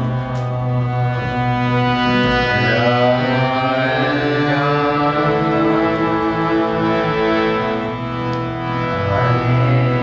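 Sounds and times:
harmonium holding chord: 0:00.0 - 0:10.0
man singing a chant: 0:02.5 - 0:07.2, 0:08.9 - 0:10.0.

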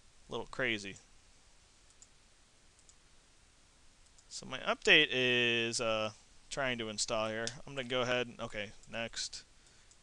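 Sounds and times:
computer mouse clicks: 0:01.9 - 0:02.2, 0:02.8 - 0:03.0.

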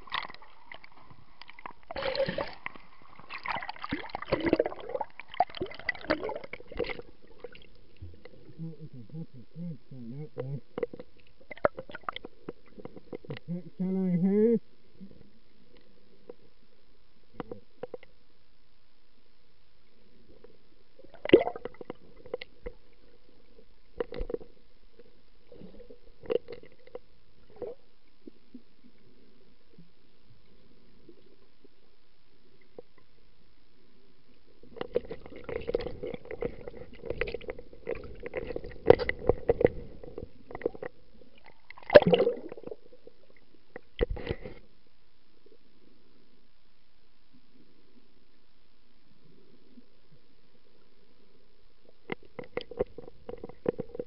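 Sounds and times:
low underwater background: 0:00.0 - 0:54.0
underwater clicks and knocks: 0:34.7 - 0:42.6, 0:52.0 - 0:54.0.

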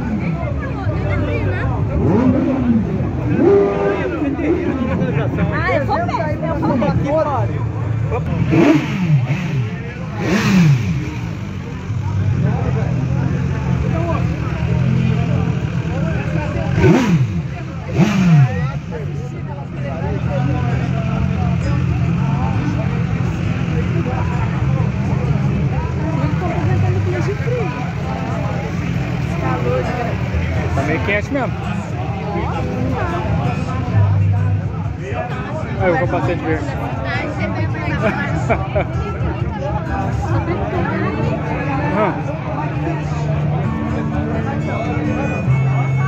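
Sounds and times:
crowd chatter: 0:00.0 - 0:46.0
motorcycle engines idling: 0:00.0 - 0:46.0.

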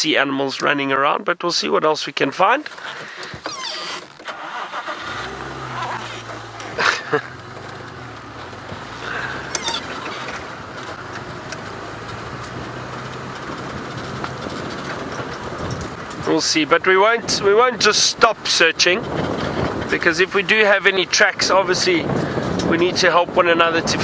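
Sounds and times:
tyres on dirt track: 0:00.0 - 0:24.0
wind noise: 0:03.2 - 0:24.0
vehicle engine running: 0:04.2 - 0:24.0.

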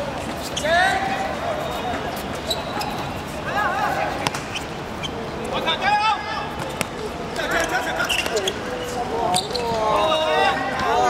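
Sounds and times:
players shouting: 0:00.0 - 0:11.0.

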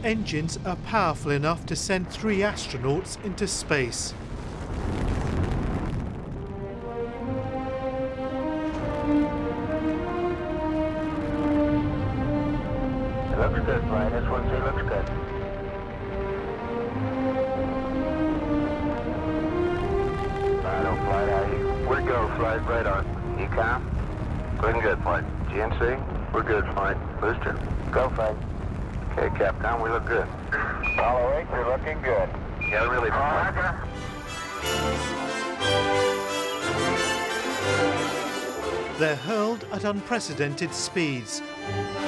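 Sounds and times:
rocket engines rumbling: 0:00.0 - 0:35.0
orchestral music: 0:06.2 - 0:25.7, 0:33.3 - 0:42.0
radio voices: 0:29.1 - 0:33.9
held music notes: 0:33.8 - 0:42.0.

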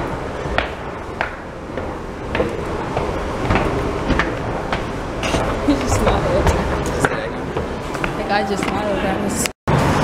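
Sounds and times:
footsteps going down stairs: 0:00.0 - 0:09.0.

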